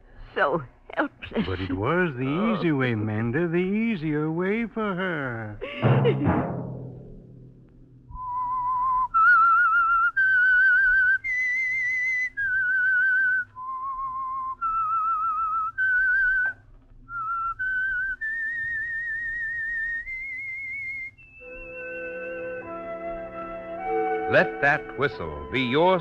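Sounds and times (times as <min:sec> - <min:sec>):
person whistling a slow melody: 0:08.1 - 0:22.8
orchestral music: 0:21.5 - 0:26.0.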